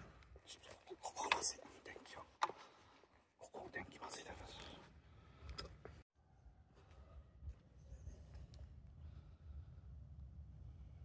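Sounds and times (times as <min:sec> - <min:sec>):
person whispering: 0:00.4 - 0:02.5, 0:03.4 - 0:05.0.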